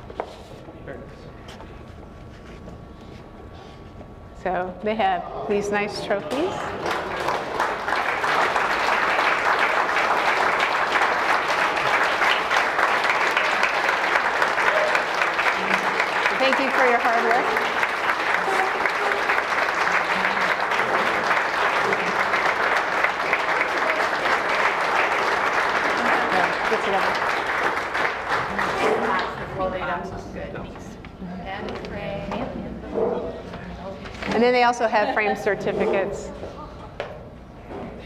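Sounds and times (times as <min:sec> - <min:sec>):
audience applauding: 0:06.3 - 0:29.5.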